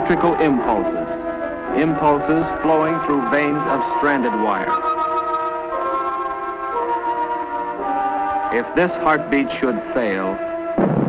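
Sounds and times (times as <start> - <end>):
sustained woodwind line: 0.0 - 5.8
film score with held chords: 0.0 - 11.0.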